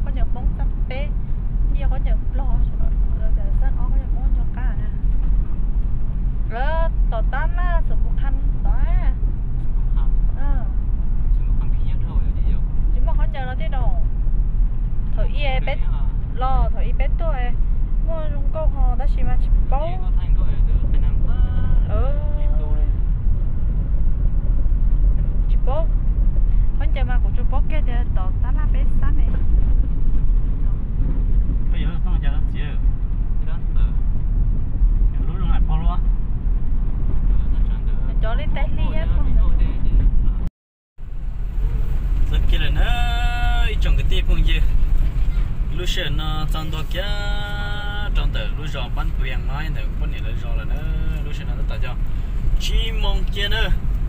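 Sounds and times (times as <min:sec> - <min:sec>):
car cabin road and engine rumble: 0:00.0 - 0:54.0.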